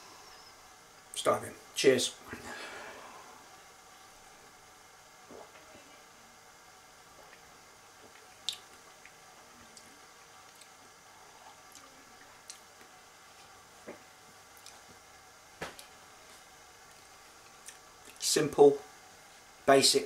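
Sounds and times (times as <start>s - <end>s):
wet mouth and lip smacks: 8.4s - 9.2s.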